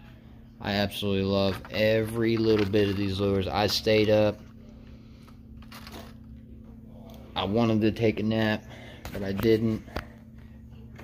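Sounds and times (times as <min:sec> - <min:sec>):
steady low hum: 0:00.0 - 0:11.0
plastic packages clicking and rustling: 0:01.4 - 0:04.0, 0:05.6 - 0:06.3.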